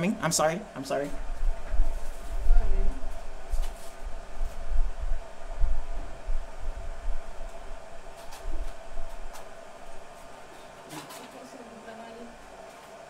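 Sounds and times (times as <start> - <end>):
faint hum: 0.0 - 13.0
low rumbling on microphone: 1.1 - 10.5.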